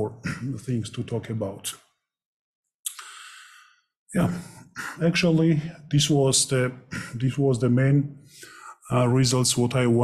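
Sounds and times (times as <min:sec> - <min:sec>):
man speaking: 0:00.0 - 0:01.8, 0:02.9 - 0:03.4, 0:04.2 - 0:10.0
man sighing: 0:02.9 - 0:03.4.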